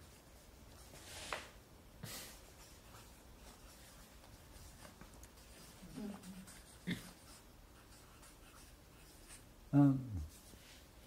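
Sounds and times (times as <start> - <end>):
marker scratching on paper: 2.3 - 9.5.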